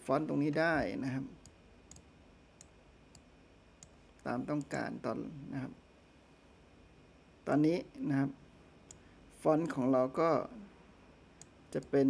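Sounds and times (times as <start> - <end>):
faint background hum: 0.0 - 12.0
computer mouse clicks: 1.4 - 4.0.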